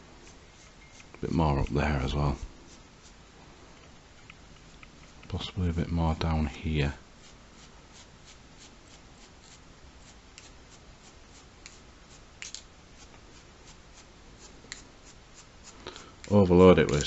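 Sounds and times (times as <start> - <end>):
paintbrush flicking paint ticks: 14.7 - 17.0.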